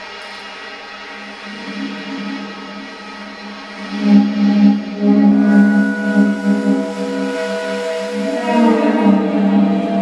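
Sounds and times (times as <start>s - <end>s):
saxophone droning pitch: 1.2s - 10.0s.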